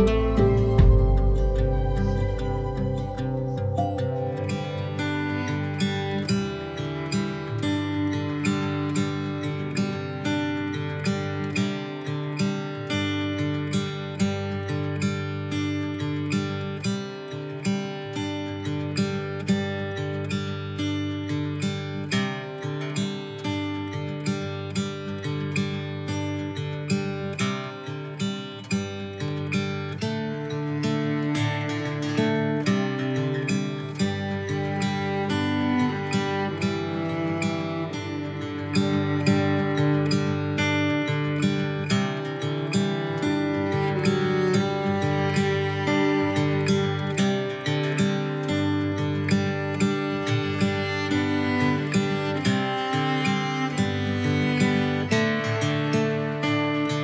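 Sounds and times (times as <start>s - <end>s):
acoustic guitar picked and strummed: 0.0s - 57.0s.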